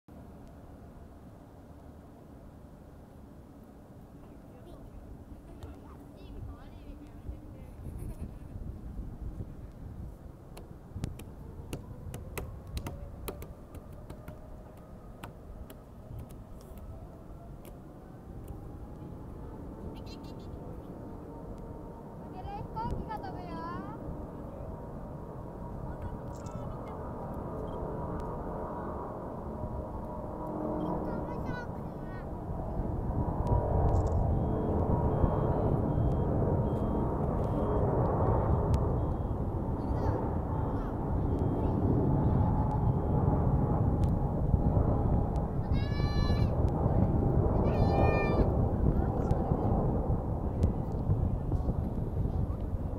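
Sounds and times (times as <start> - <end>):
faint steady whine: 0.1 - 52.9
distant jet engines rumbling: 0.4 - 52.9.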